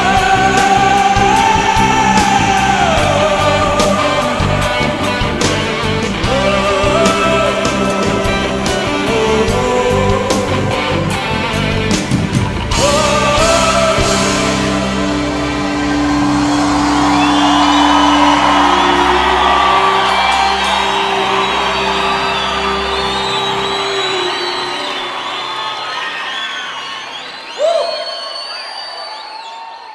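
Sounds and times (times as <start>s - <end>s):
audience cheering and whooping: 12.7s - 29.9s
loud whoop: 12.7s - 29.9s.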